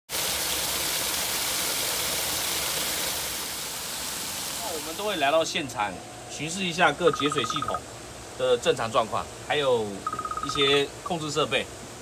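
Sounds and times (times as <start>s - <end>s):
water gushing onto concrete: 0.1s - 5.3s.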